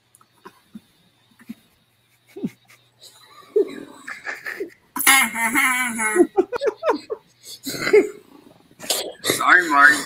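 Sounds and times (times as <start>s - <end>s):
man laughing: 1.5s - 7.2s.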